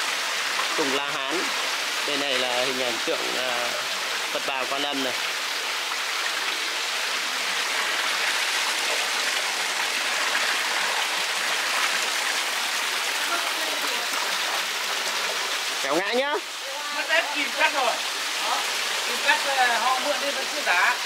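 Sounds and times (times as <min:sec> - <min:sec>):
water splashing down rocks: 0:00.0 - 0:21.0.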